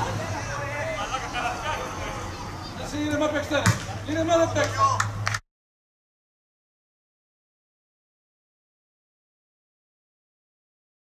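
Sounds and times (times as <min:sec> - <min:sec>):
men shouting: 0:00.0 - 0:03.5
football thud: 0:03.6 - 0:04.0.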